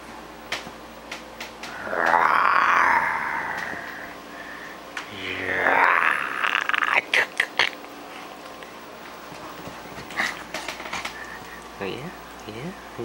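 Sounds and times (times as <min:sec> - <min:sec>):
small dog growling and snarling: 0:01.7 - 0:04.0, 0:05.1 - 0:07.4.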